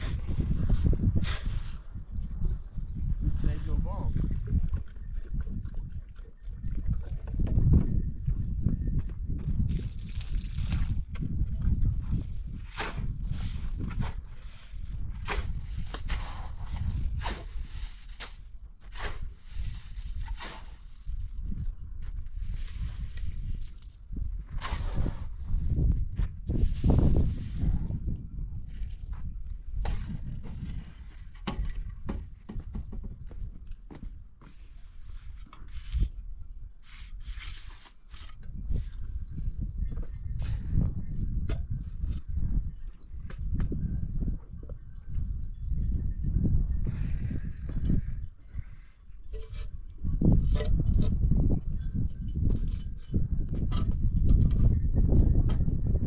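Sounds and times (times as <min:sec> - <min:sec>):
shovel scraping wet mortar: 0:12.5 - 0:21.2, 0:22.4 - 0:25.8, 0:35.1 - 0:36.2, 0:36.8 - 0:39.0.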